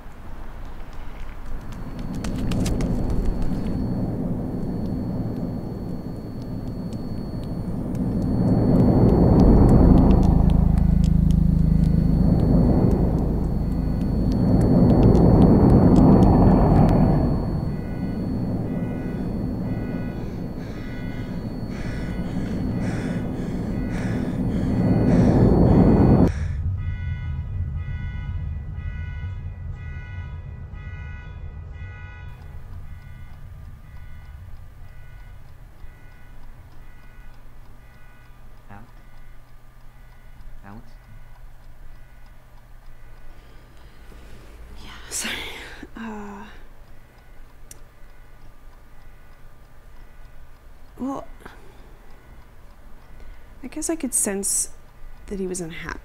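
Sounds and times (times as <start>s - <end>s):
rumbles: 0.0s - 48.2s
low drone: 0.0s - 56.0s
soft sustained tones: 1.0s - 56.0s.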